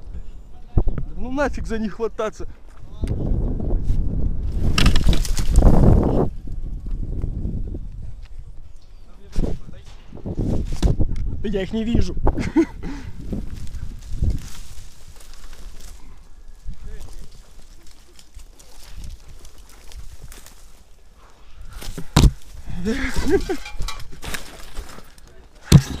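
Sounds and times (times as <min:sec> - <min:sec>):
rustling on camera: 0:13.2 - 0:26.0.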